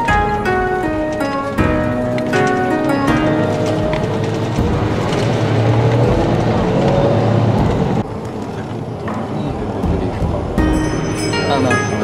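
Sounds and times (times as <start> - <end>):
bus engine rumble: 0.0 - 12.0
road noise: 0.0 - 12.0.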